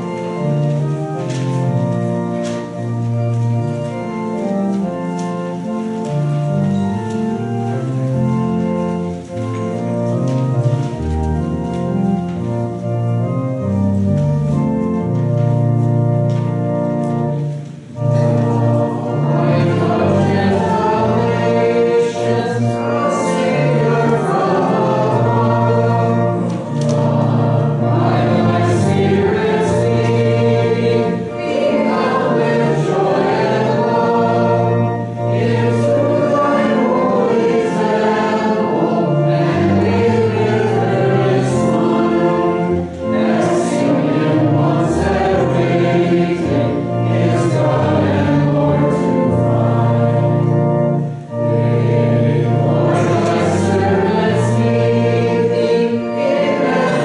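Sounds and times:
congregation singing a hymn: 0:00.0 - 0:57.0.

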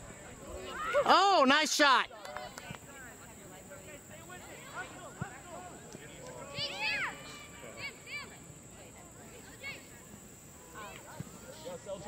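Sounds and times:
distant shouts of players and spectators: 0:00.0 - 0:12.0.

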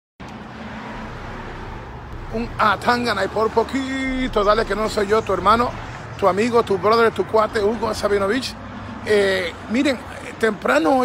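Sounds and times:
road traffic rushing: 0:00.2 - 0:11.0.

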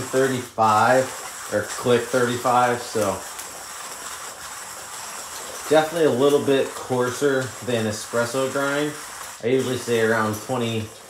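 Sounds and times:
hand coffee grinder grinding: 0:00.0 - 0:11.0.

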